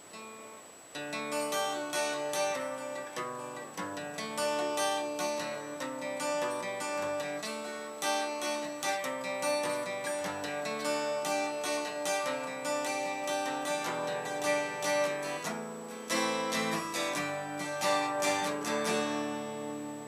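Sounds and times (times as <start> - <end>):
acoustic guitar playing: 0.0 - 20.0.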